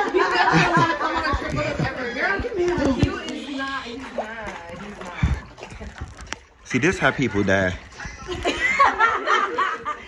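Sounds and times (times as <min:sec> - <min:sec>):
people laughing: 0:00.0 - 0:03.9, 0:07.6 - 0:10.0.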